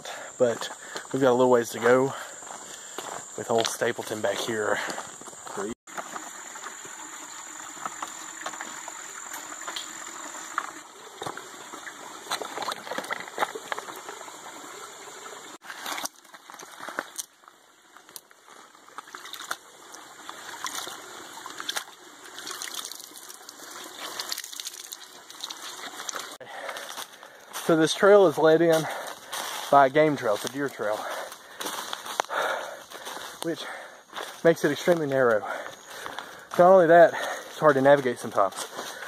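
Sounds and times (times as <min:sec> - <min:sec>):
stream trickling over rocks: 0:00.1 - 0:39.0
cloth splashing and dripping: 0:20.3 - 0:26.4.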